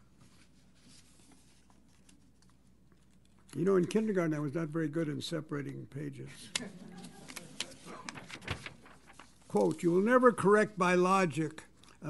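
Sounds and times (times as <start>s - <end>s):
paper sheets rustling: 6.9s - 10.3s.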